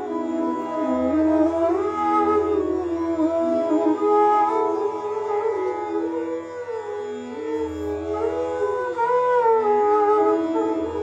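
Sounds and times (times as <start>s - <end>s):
bamboo flute melody: 0.0s - 11.0s.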